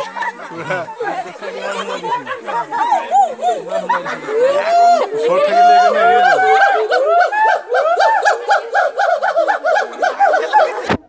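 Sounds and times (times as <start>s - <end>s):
gibbon whooping calls: 5.8s - 10.9s.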